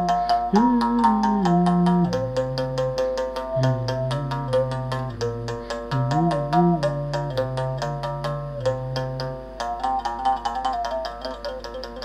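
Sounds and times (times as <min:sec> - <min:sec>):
overtone melody: 0:00.0 - 0:11.3
mouth bow string struck with stick: 0:00.0 - 0:12.0.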